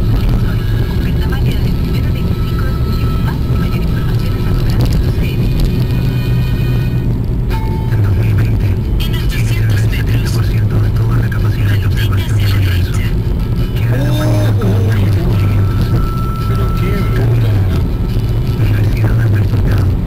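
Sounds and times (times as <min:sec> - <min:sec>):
indistinct voices: 0:00.0 - 0:06.9, 0:07.8 - 0:20.0
car engine and road noise: 0:00.0 - 0:20.0
music in a car: 0:00.0 - 0:20.0.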